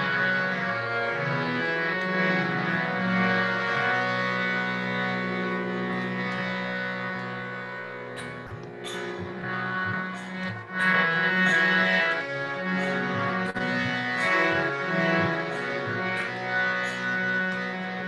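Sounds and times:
held melodic notes: 0.0 - 18.0
tanpura drone: 0.0 - 18.0.

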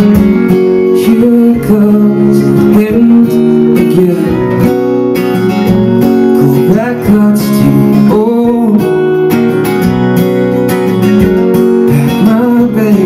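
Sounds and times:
man singing: 0.0 - 4.8, 6.3 - 9.4, 11.8 - 13.0
acoustic guitar strumming: 0.0 - 13.0.

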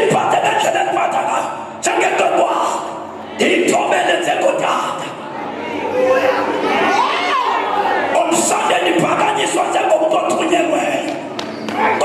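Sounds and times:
man preaching into microphone: 0.0 - 5.2, 8.1 - 11.3
congregation chatter: 0.0 - 12.0.

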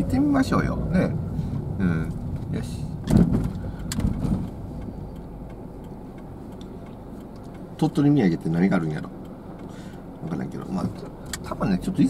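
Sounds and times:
car engine rumble inside cabin: 0.0 - 12.0.

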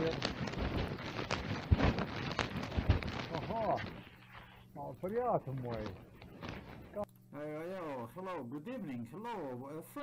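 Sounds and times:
knocks and rustles: 0.0 - 4.1.

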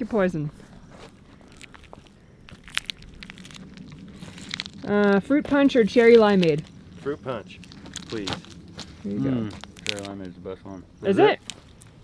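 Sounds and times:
packets crinkling: 1.0 - 10.3.

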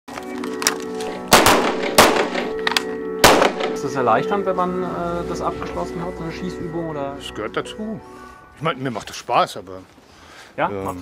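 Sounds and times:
background music with held notes: 0.1 - 9.4
handgun shots: 1.2 - 3.8.

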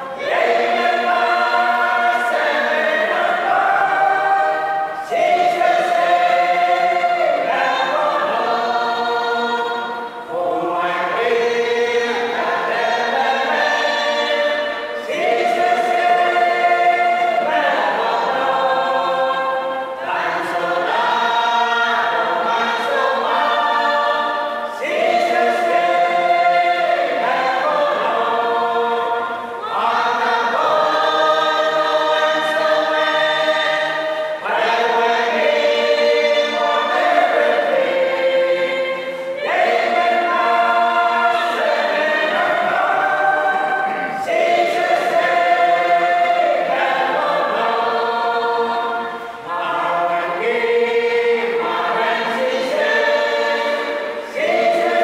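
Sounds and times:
group singing a hymn unaccompanied: 0.0 - 55.0.

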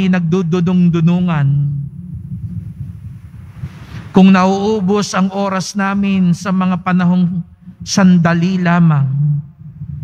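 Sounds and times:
low background rumble: 0.0 - 10.0
faint hiss: 1.5 - 6.4.

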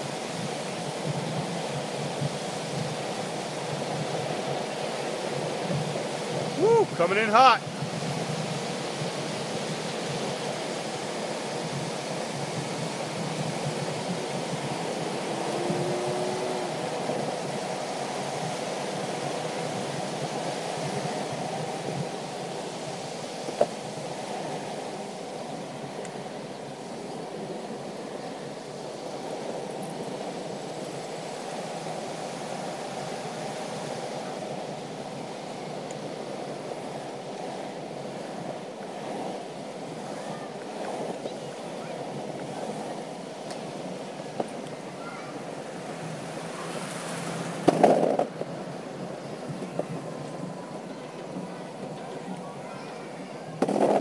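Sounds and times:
wind rushing over microphone: 0.0 - 54.0
tyre and road rumble: 35.6 - 52.7.

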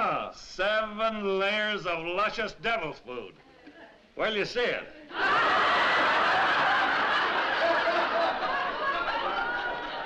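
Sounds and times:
studio audience laughing: 5.1 - 10.0.

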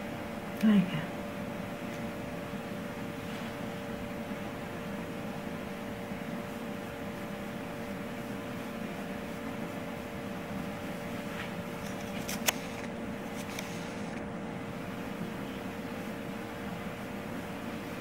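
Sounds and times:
machine hum and hiss: 0.0 - 18.0.

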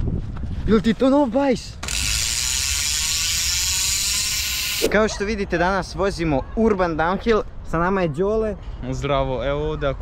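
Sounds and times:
bicycle hub ratcheting buzz: 1.8 - 4.9.

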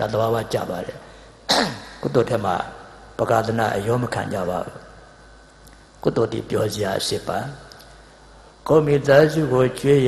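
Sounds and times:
man speaking into a microphone: 0.0 - 5.1, 5.8 - 7.9, 8.5 - 10.0.

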